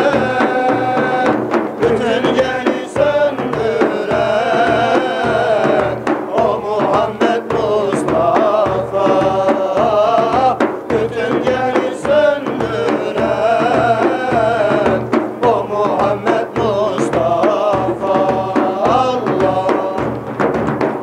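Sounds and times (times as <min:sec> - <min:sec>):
men singing a hymn together: 0:00.0 - 0:20.4
frame drums beating: 0:00.0 - 0:21.0.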